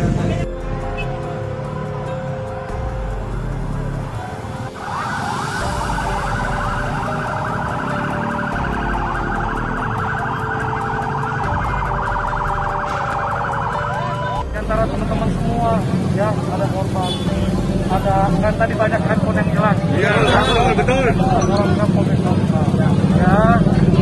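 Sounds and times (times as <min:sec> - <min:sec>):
police siren yelping: 0:04.3 - 0:16.4.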